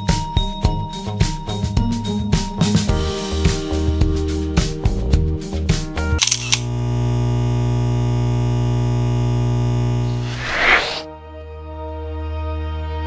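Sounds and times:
background music with steady beat: 0.0s - 6.2s
whoosh transition effect: 10.2s - 11.1s.

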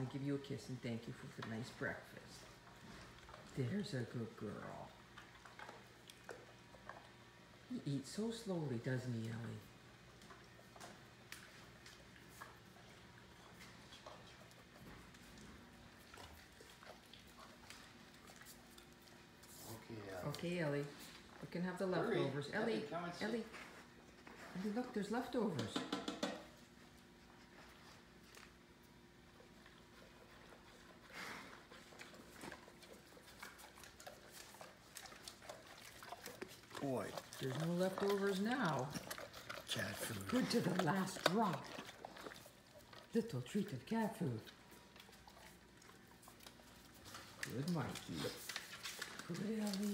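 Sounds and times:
faint steady hum: 0.0s - 49.9s
dog eating kibble from metal bowl: 31.6s - 49.9s.

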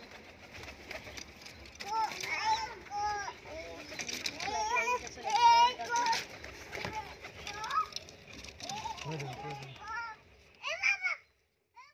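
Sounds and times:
children calling and chattering: 0.0s - 11.9s.

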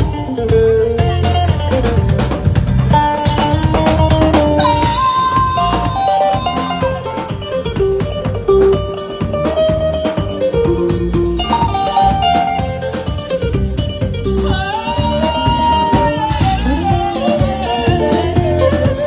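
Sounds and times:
drum beat: 0.0s - 19.0s
guitars: 0.0s - 19.0s
keyboard melody: 0.0s - 19.0s.

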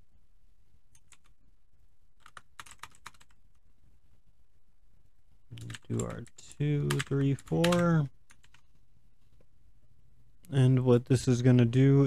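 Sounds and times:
keyboard keys clicking: 2.2s - 3.4s, 6.9s - 8.6s.

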